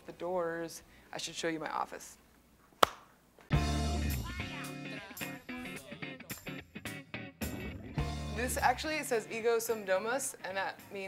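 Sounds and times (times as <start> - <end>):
background music: 3.5 - 11.0.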